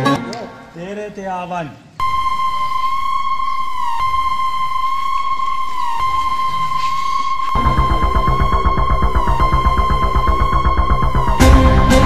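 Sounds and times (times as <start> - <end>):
high electronic tone: 2.0 - 12.0.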